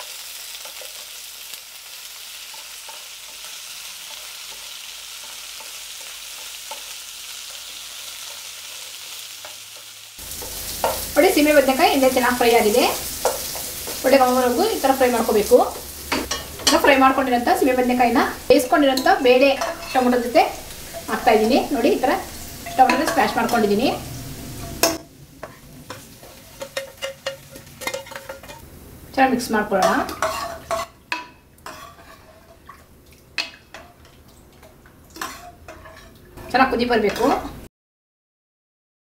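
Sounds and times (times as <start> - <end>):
ladle stirring in metal pot: 24.6 - 28.6, 29.8 - 37.4
metal clinks and scrapes on pot: 25.9 - 28.6, 29.8 - 32.6, 35.2 - 37.4.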